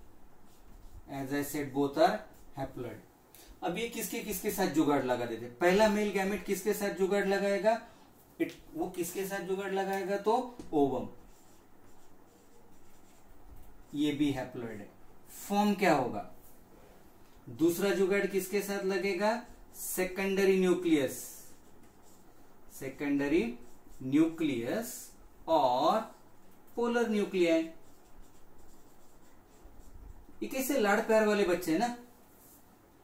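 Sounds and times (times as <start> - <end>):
faint scratching of writing: 0.4 - 2.8, 8.0 - 14.6, 16.3 - 33.0
pen scratching handwriting: 27.6 - 30.6.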